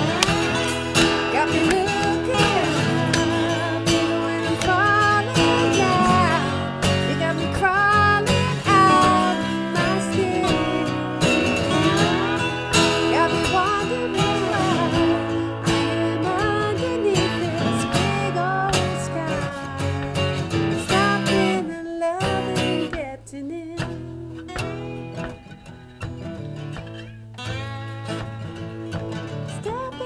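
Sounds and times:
acoustic guitar strumming: 0:00.0 - 0:30.0
slide guitar solo: 0:00.0 - 0:30.0.

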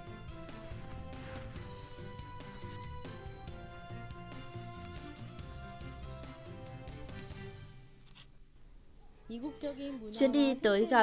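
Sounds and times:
woman speaking: 0:09.3 - 0:11.0.

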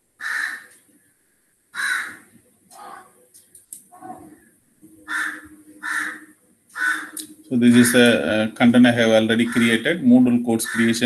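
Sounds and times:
bird calling: 0:01.8 - 0:03.1, 0:05.0 - 0:08.2, 0:09.1 - 0:11.0.

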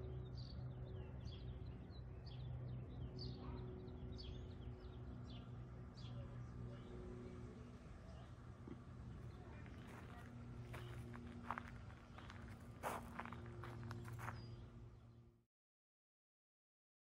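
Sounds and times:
steady low hum: 0:00.0 - 0:15.4
faint footsteps: 0:08.6 - 0:14.6.

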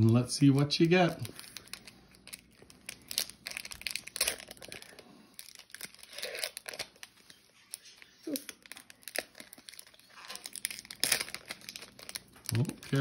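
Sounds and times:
wrapper being torn open: 0:01.1 - 0:13.0.

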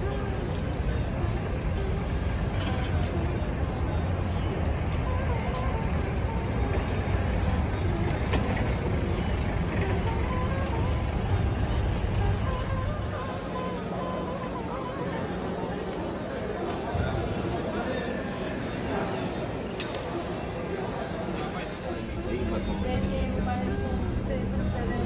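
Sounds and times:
faint distant voices: 0:00.0 - 0:25.0.

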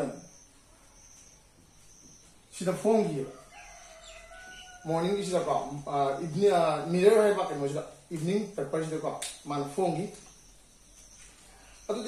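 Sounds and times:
rooster crowing: 0:03.2 - 0:05.6.

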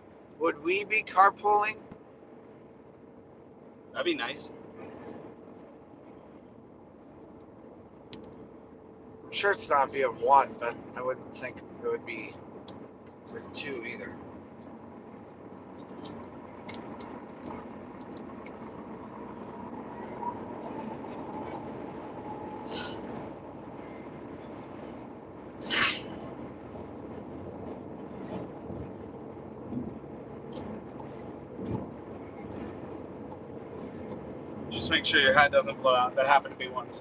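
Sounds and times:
road and wind noise in car: 0:00.0 - 0:37.0.

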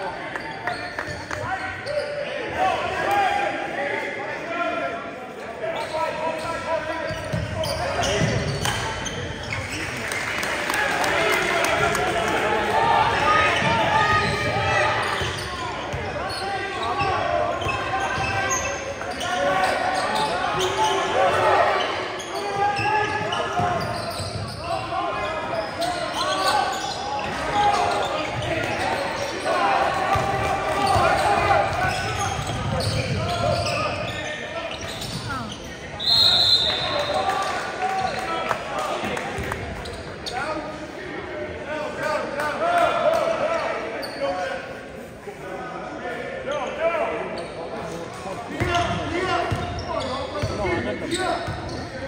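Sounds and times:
voices of players and spectators: 0:00.0 - 0:52.0
referee's whistle: 0:36.0 - 0:37.3.

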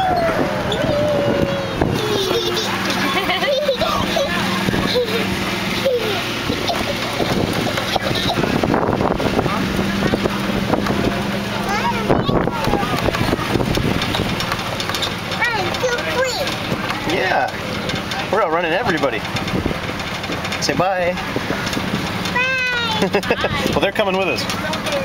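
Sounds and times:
people's voices: 0:00.0 - 0:19.4, 0:20.5 - 0:25.0
ride-on train engine running: 0:00.0 - 0:25.0.

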